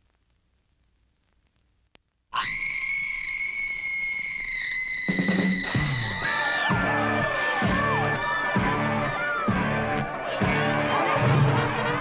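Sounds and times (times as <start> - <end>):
woman screaming: 2.4 - 6.7
music with heavy drum beats: 5.1 - 12.0.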